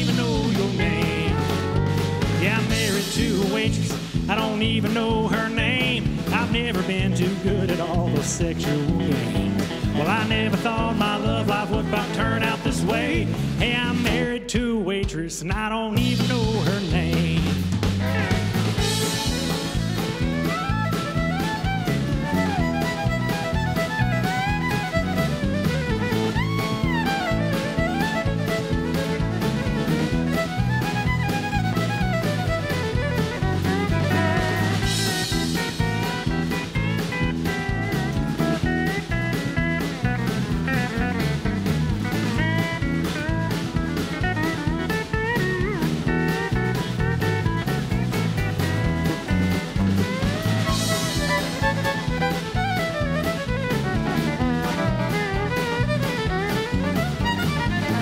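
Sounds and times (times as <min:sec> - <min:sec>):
pedal steel guitar: 0:00.0 - 0:14.5, 0:16.0 - 0:58.0
fiddle: 0:00.0 - 0:14.7, 0:16.0 - 0:58.0
acoustic guitar: 0:00.0 - 0:58.0
drum kit beat: 0:00.0 - 0:58.0
electric guitar: 0:00.0 - 0:58.0.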